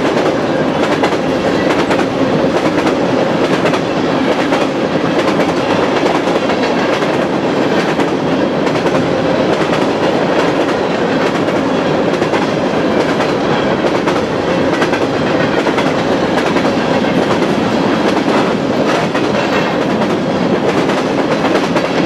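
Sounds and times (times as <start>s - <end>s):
freight train wheels rumbling: 0.0s - 22.0s.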